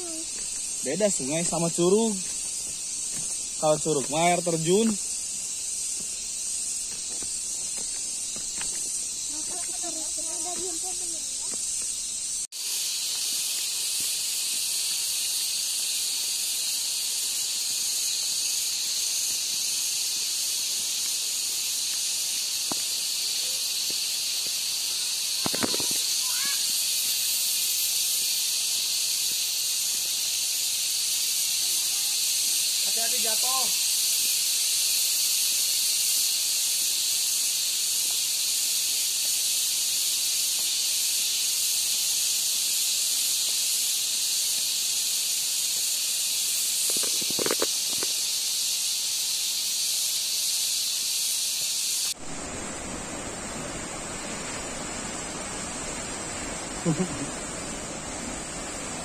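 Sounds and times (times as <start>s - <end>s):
high-pitched insect chorus: 0.0s - 59.0s.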